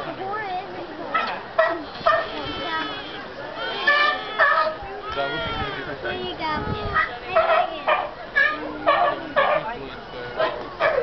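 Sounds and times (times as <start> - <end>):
sea lion barking: 1.1 - 6.0, 6.8 - 11.0.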